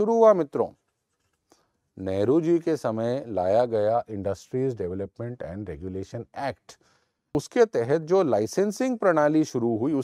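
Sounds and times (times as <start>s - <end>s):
man speaking: 0.0s - 0.8s, 2.0s - 6.8s, 7.4s - 10.0s.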